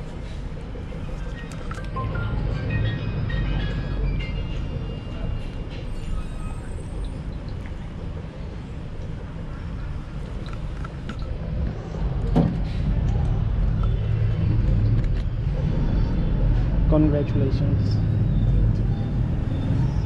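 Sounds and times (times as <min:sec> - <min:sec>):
low steady rumble: 0:00.0 - 0:16.9.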